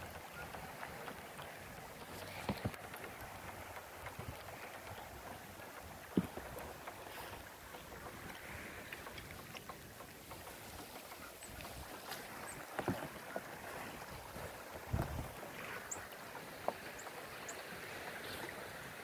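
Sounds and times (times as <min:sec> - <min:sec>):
water lapping against rocks: 0:00.0 - 0:19.0.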